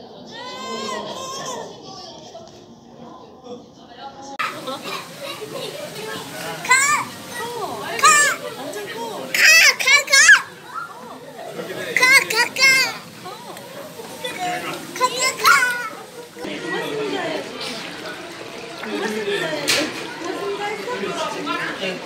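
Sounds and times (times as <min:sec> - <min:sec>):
murmur of voices: 0:00.0 - 0:22.0
child squealing and laughing: 0:15.1 - 0:16.0.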